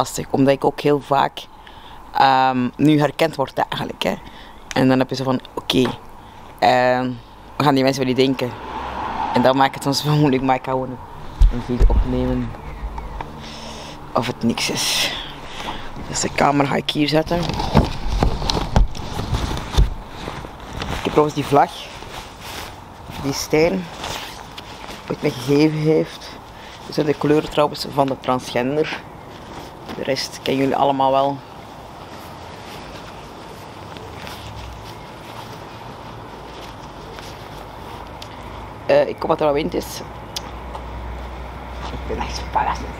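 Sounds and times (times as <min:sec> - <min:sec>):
low outdoor rumble: 0:00.0 - 0:42.9
rubbing and rustle: 0:11.2 - 0:38.5.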